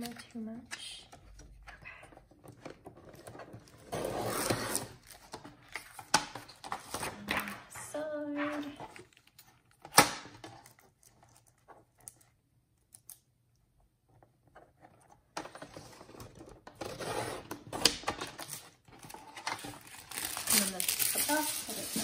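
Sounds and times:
plastic sheets crinkling: 18.2s - 22.0s.

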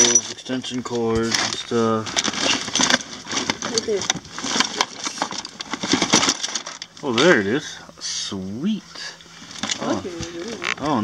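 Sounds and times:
cables and plugs rattling in bin: 0.0s - 7.5s, 9.4s - 11.0s.

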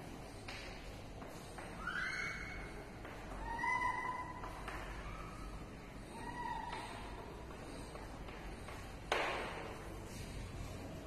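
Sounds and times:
chalk squeaking on blackboard: 1.3s - 8.8s.

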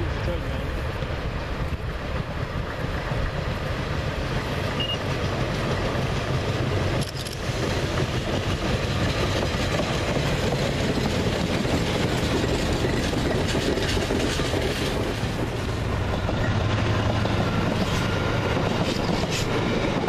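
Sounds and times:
diesel train passing: 0.0s - 20.0s.

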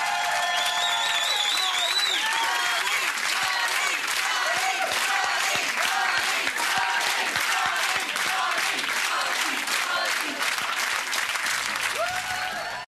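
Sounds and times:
audience applauding: 0.0s - 12.9s.

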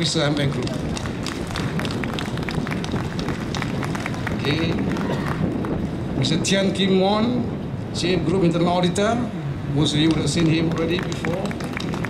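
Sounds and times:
crowd rumble: 0.0s - 6.4s
audience applause: 0.3s - 5.8s, 10.0s - 12.0s.

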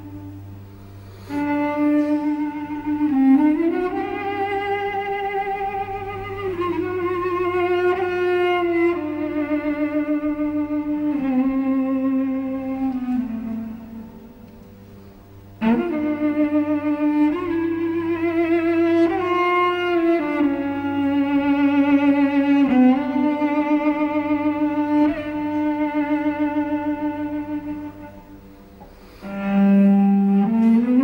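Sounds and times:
solo cello slow melody: 0.0s - 31.0s.

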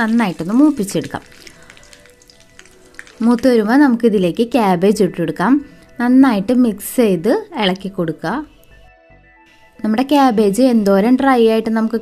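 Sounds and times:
food sizzling in hot oil: 0.0s - 3.9s.

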